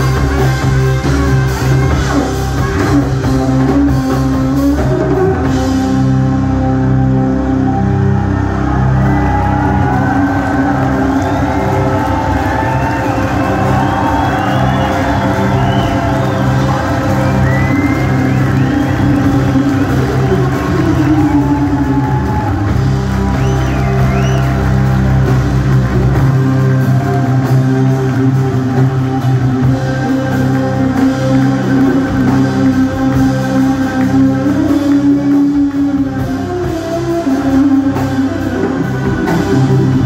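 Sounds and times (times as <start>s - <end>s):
live band synthesizer chords: 0.0s - 40.0s
audience whoops and cheers: 7.2s - 37.8s.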